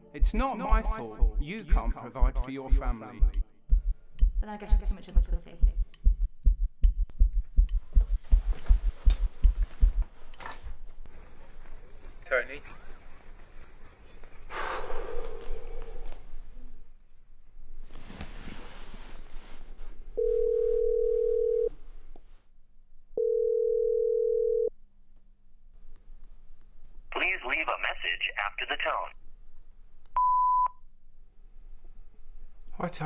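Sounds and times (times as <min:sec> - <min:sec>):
fast low heartbeat thudding: 0:00.2 - 0:10.1
telephone ringing tone: 0:20.2 - 0:21.7, 0:23.2 - 0:24.7.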